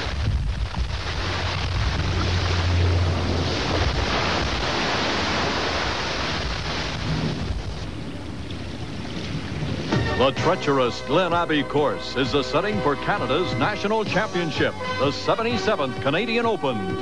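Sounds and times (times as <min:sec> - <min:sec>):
wind on microphone: 0:00.0 - 0:10.3
sea surf on stony shore: 0:00.0 - 0:16.9.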